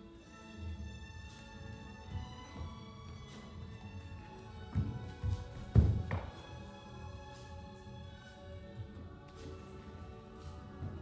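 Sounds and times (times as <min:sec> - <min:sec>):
music with held notes: 0:00.0 - 0:11.0
feet thudding on floor: 0:04.4 - 0:06.6.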